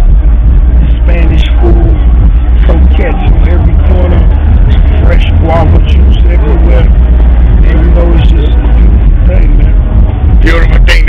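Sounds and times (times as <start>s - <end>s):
loud low rumble: 0.0s - 11.0s
man talking: 0.8s - 2.0s, 2.6s - 7.0s, 7.6s - 9.8s, 10.4s - 11.0s.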